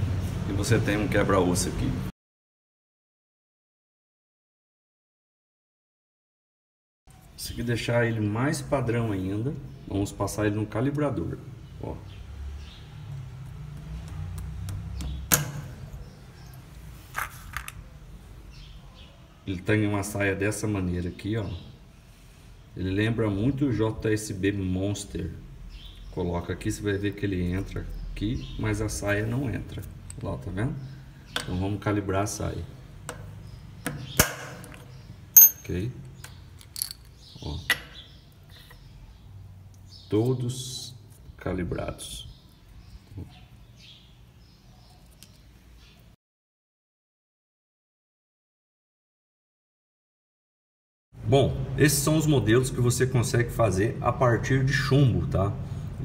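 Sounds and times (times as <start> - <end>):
small metal clicks and clinks: 35.4 - 37.8.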